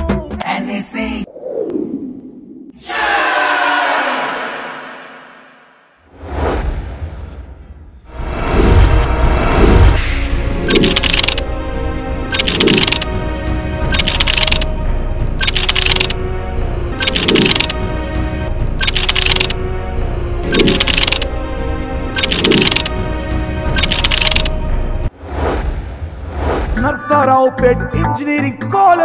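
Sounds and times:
background music: 0:09.1 - 0:25.1, 0:26.8 - 0:29.0.

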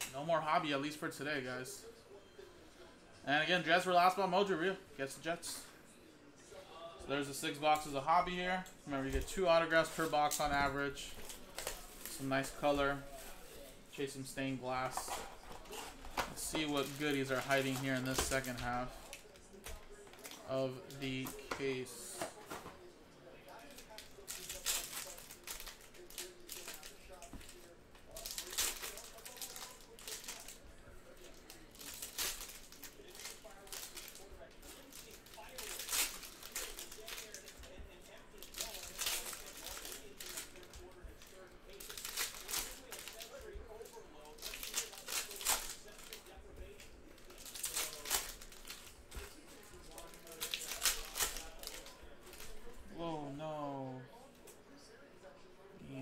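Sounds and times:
foil packs tearing and crinkling: 0:23.6 - 0:30.6, 0:31.2 - 0:43.5, 0:44.2 - 0:52.5.

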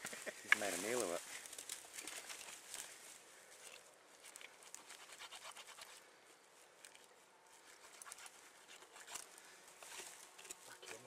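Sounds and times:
knife scraping and crackling: 0:03.7 - 0:06.0, 0:07.8 - 0:11.0.

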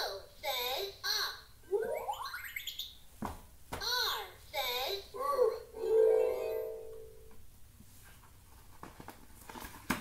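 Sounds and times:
toy voice-like note: 0:05.2 - 0:07.2.

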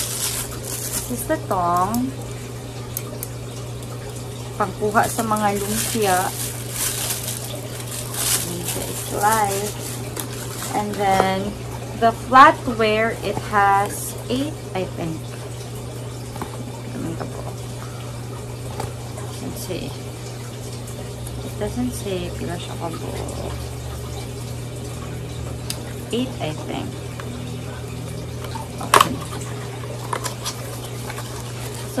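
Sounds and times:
packaging snapping: 0:00.0 - 0:01.2, 0:05.1 - 0:11.0
packaging crinkling: 0:00.0 - 0:02.0, 0:04.8 - 0:11.2, 0:28.5 - 0:32.0
steady low hum: 0:00.0 - 0:32.0.

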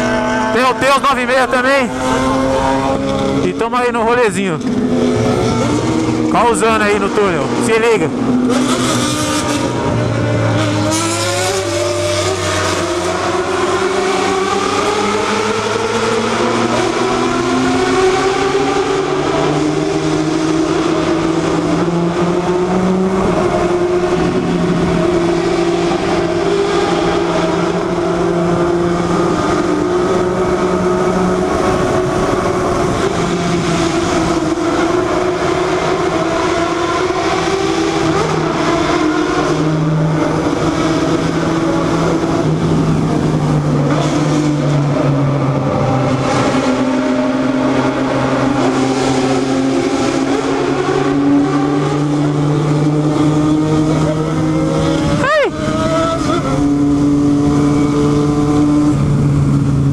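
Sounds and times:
motorcycle engine accelerating: 0:00.0 - 0:03.8, 0:04.4 - 0:59.9.

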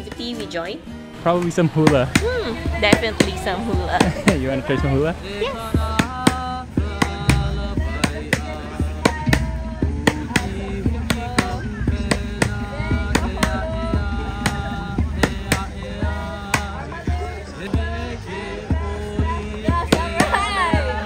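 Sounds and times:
hula music melody: 0:00.0 - 0:21.0
sharp gourd drum beat: 0:01.4 - 0:21.0.

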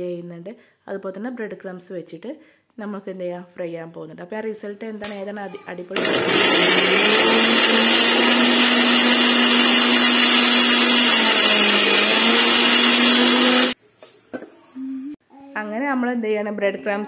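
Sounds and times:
mixer grinder motor whirring: 0:05.9 - 0:13.8.

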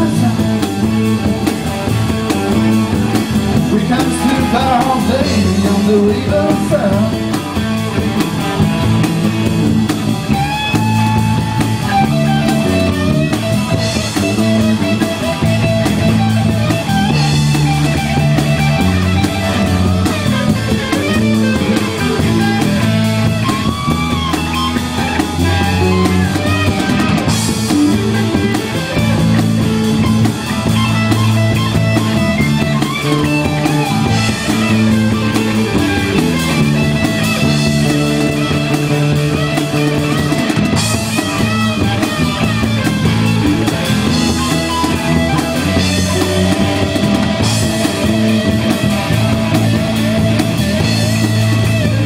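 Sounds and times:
live rock band playing: 0:00.0 - 0:52.0.

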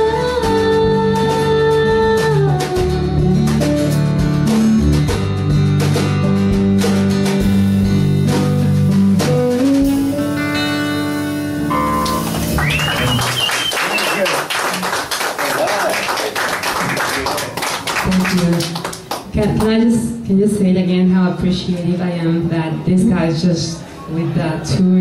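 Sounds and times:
live band playing: 0:00.0 - 0:15.3
audience clapping and cheering: 0:11.7 - 0:19.3.

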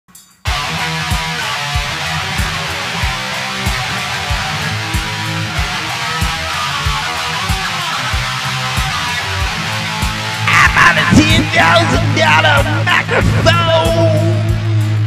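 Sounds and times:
guitar strummed: 0:00.4 - 0:15.0
low thumping beat: 0:00.5 - 0:15.0.

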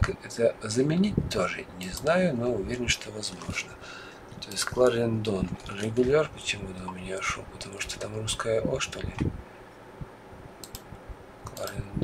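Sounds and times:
computer mouse clicking: 0:10.6 - 0:11.8.

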